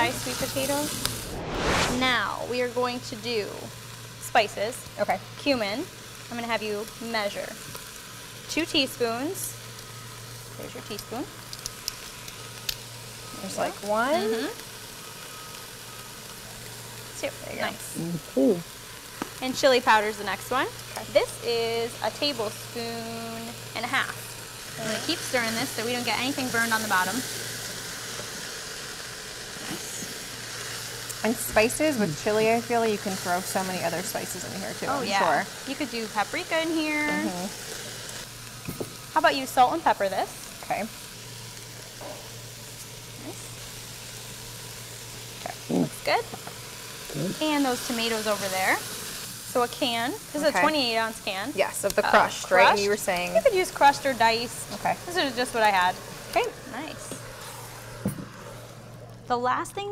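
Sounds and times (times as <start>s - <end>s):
vegetables sizzling in a cooker: 0.0s - 59.9s.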